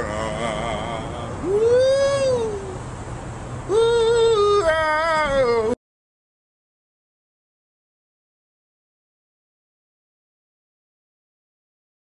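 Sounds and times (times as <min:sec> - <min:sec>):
man singing long wordless notes: 0:00.0 - 0:02.8, 0:03.7 - 0:05.8.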